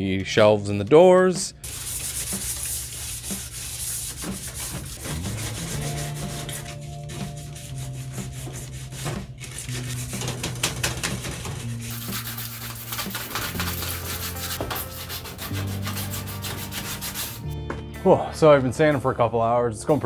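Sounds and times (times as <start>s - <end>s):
background music: 0.0s - 20.0s
sanding block on metal: 1.6s - 17.4s.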